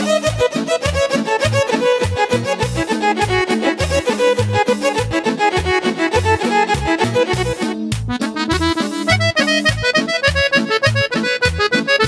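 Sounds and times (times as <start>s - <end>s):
accordion: 0.0s - 12.0s
folk band lead melody: 0.0s - 12.0s
steady bass beat: 0.1s - 12.0s.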